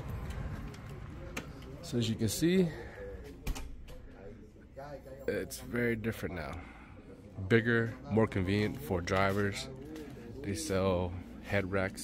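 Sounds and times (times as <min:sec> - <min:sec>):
faint voices: 0:00.0 - 0:12.0
man speaking: 0:04.1 - 0:12.0.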